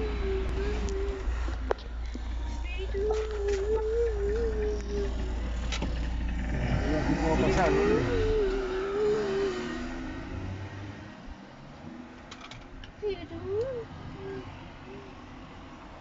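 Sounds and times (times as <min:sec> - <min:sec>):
car engine and road rumble: 0:00.0 - 0:16.0
person singing wavering note: 0:02.4 - 0:05.5.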